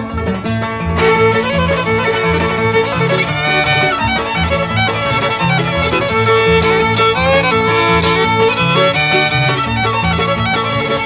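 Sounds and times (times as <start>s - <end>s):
bluegrass fiddle melody: 0.0s - 11.0s
string band backing: 0.0s - 11.0s.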